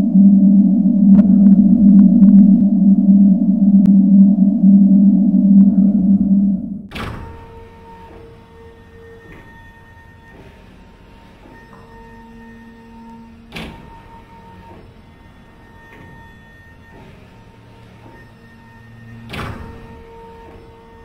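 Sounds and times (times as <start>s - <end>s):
faint held tones: 0.0s - 6.9s
loud low electronic drone: 0.0s - 8.9s.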